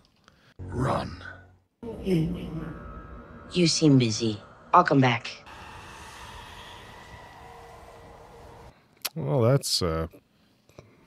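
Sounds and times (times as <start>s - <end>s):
ambient drone soundtrack: 0.6s - 8.8s
low tone: 0.6s - 8.8s.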